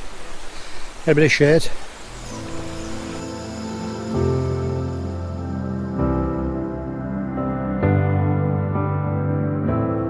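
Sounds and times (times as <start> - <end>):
ambient music of sustained tones: 1.8 - 10.0.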